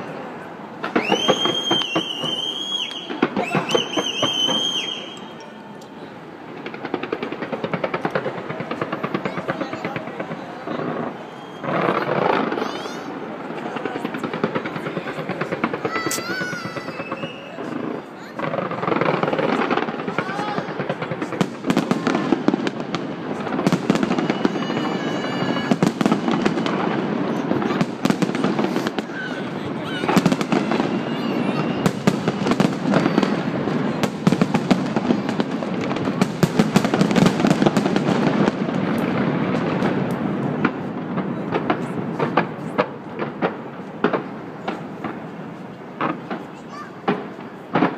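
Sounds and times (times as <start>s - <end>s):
fireworks bangs and crackles: 0.0s - 47.9s
people's voices: 0.0s - 47.9s
short high whistles: 1.0s - 5.7s, 11.2s - 11.9s, 16.0s - 17.7s.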